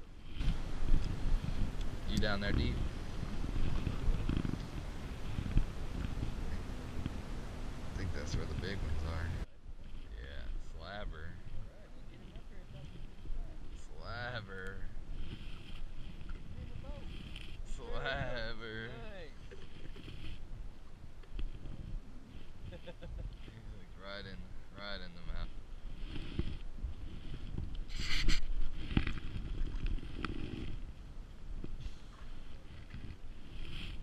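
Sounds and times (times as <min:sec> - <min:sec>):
wind rumbling on microphone: 0:00.0 - 0:34.0.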